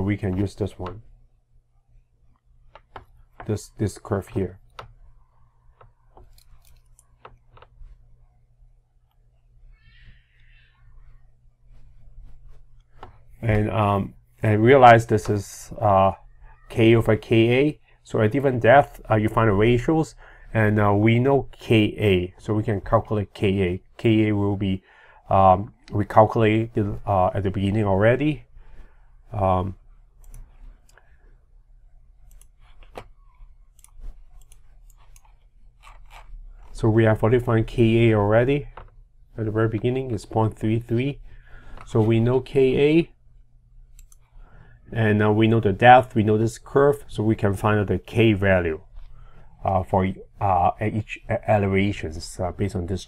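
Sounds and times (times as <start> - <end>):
faint low hum: 0.0 - 53.0.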